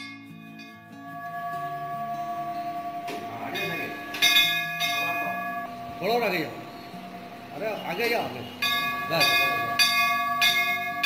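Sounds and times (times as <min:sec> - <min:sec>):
temple bell ringing: 0:00.0 - 0:11.0.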